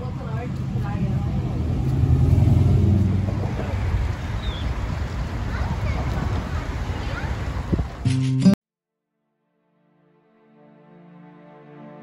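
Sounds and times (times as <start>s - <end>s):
vehicle engine passing by: 0.0s - 8.0s.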